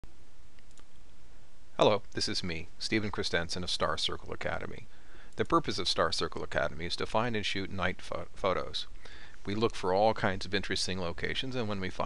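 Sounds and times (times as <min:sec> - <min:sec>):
low steady background noise: 0:00.1 - 0:12.0.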